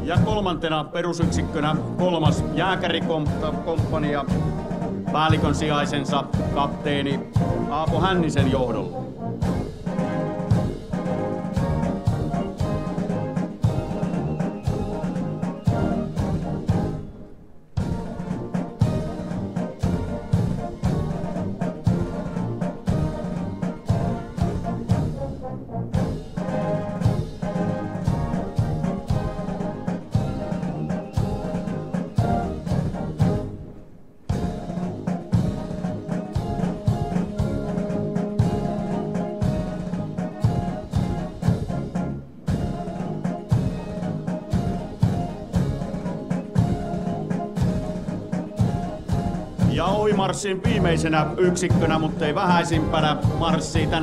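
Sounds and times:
steady drumbeat: 0.0s - 33.6s, 34.2s - 54.0s
military brass band march: 0.0s - 54.0s.

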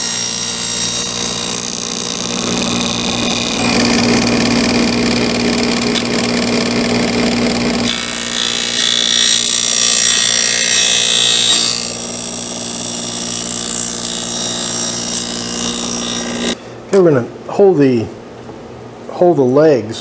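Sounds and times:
table saw cutting wood: 0.0s - 16.6s.

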